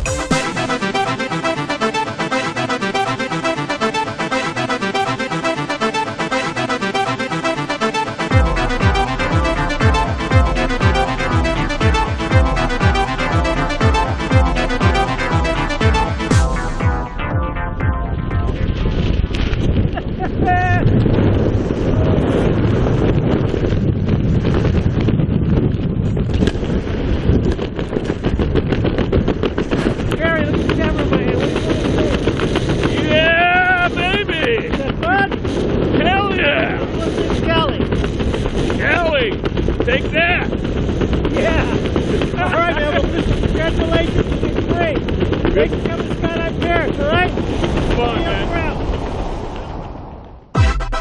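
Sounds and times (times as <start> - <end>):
wind buffeting microphone: 16.0 - 50.5.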